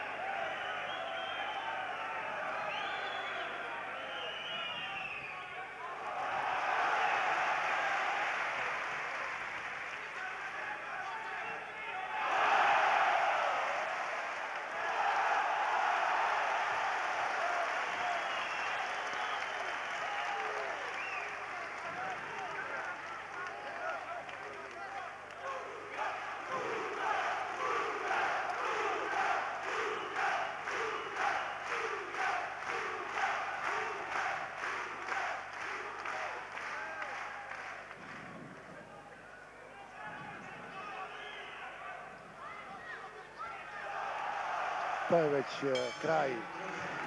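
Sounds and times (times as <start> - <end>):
crowd shouting and cheering: 0.0 - 37.9, 38.9 - 47.0.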